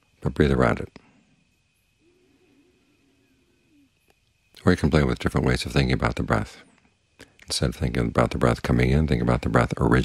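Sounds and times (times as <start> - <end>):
steady high whine: 0.0 - 10.0
dove cooing: 1.9 - 4.1.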